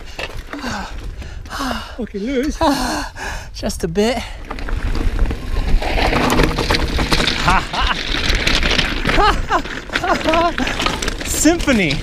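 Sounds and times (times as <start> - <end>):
bike clattering and rattling: 0.0 - 1.5, 4.3 - 12.0
bike tyres crunching over stones: 0.0 - 1.6, 4.3 - 12.0.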